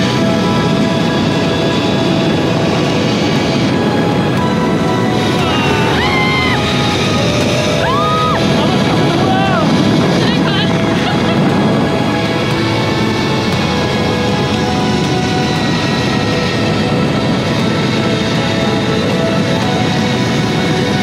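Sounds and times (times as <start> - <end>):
background music with held tones: 0.0 - 21.0
wind on microphone: 0.0 - 21.0
zipline rushing noise: 0.0 - 21.0.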